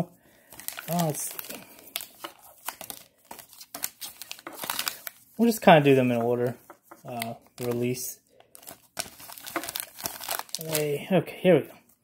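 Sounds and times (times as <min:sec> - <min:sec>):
foil wrapper crinkling: 0:00.4 - 0:06.0, 0:07.0 - 0:11.0.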